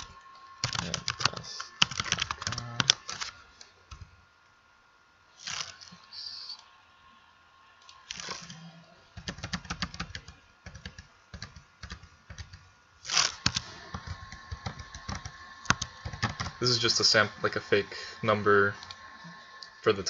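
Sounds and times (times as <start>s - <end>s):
typing on computer keyboard: 0.0s - 3.3s, 9.2s - 12.6s, 13.4s - 16.6s.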